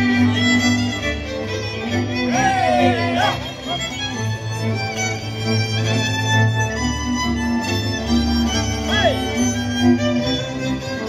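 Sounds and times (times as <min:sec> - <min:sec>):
fiddle-led folk dance music: 0:00.0 - 0:11.0.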